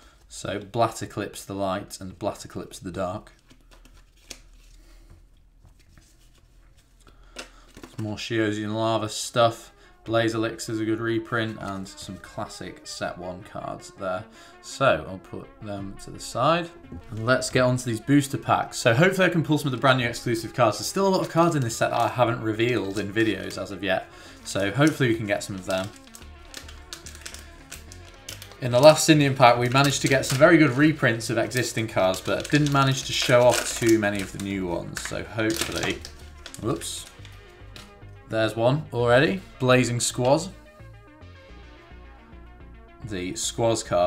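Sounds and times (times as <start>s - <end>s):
quiet background music: 0.0s - 44.0s
cards rustling against each other: 3.3s - 8.2s, 16.8s - 38.0s
foil pack crinkling and tearing: 3.5s - 4.9s, 19.6s - 38.0s.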